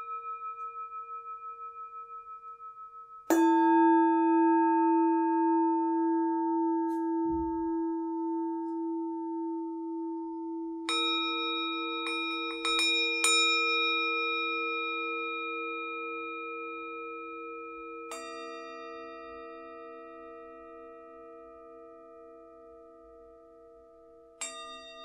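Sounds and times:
singing bowls ringing: 0:00.0 - 0:25.0.

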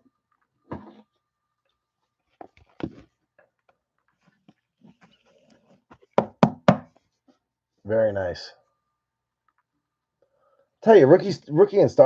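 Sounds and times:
sharp knocks: 0:06.2 - 0:06.9.

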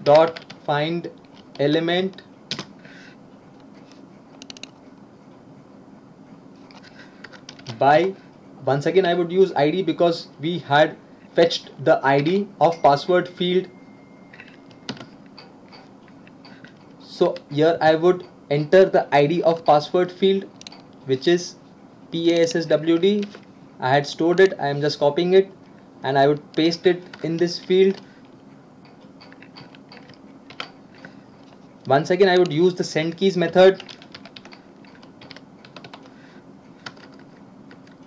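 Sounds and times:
keyboard keys typing: 0:00.0 - 0:00.6, 0:01.2 - 0:02.7, 0:04.3 - 0:04.8, 0:07.2 - 0:07.9, 0:14.3 - 0:17.5, 0:22.8 - 0:23.4, 0:29.2 - 0:31.1, 0:31.8 - 0:36.1, 0:36.8 - 0:38.0
light keyboard keystrokes: 0:04.4 - 0:04.8, 0:06.7 - 0:07.8, 0:31.8 - 0:36.1, 0:36.8 - 0:38.0.

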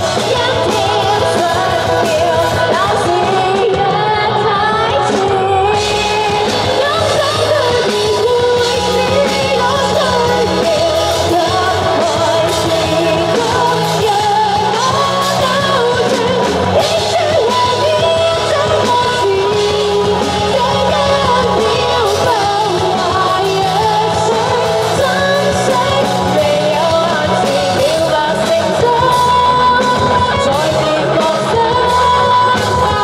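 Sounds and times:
live band playing: 0:00.0 - 0:33.0
woman singing: 0:00.0 - 0:33.0.

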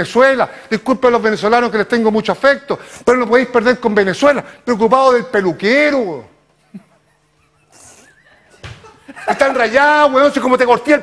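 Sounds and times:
high wavering laugh-like voice: 0:06.6 - 0:09.6.

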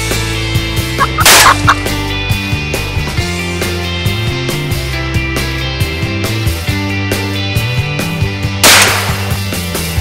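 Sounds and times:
rock music with steady beat: 0:00.0 - 0:10.0
shotgun blast: 0:08.6 - 0:09.4.

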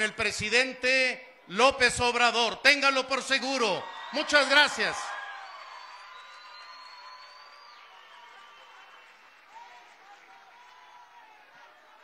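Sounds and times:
audience applauding: 0:03.8 - 0:12.0.

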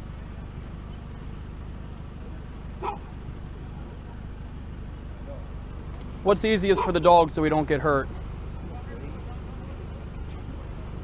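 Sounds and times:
steady low rumble: 0:00.0 - 0:11.0
dog barking: 0:02.8 - 0:03.2, 0:06.7 - 0:07.0.

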